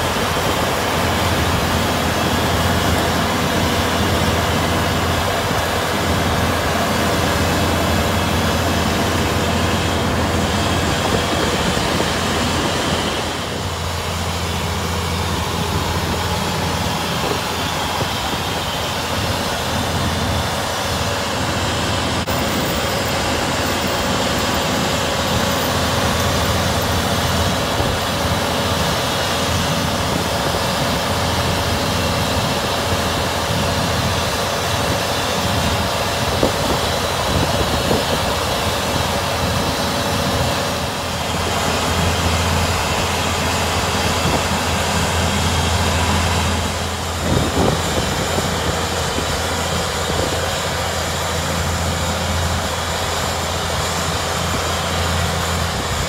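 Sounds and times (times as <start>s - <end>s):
drilling rig engine drone: 0.0s - 56.0s.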